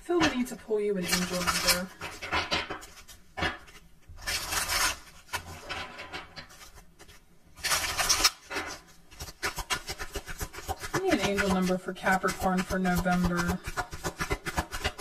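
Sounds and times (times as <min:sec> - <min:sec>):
cards being shuffled: 0:00.3 - 0:05.6, 0:06.4 - 0:15.0
cards clicking and tapping: 0:09.2 - 0:11.6, 0:12.3 - 0:15.0.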